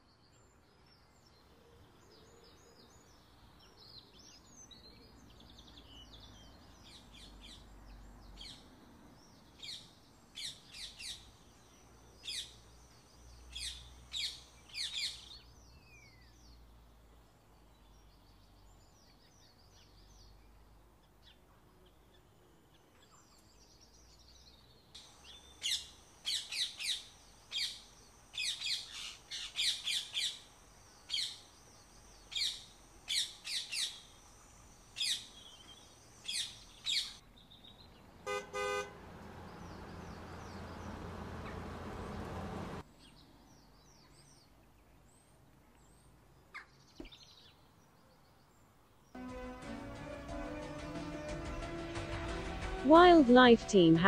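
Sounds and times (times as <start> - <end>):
small birds chirping: 0.0 - 38.3, 38.9 - 49.1
horn-like honk: 38.2 - 39.0, 49.2 - 52.5.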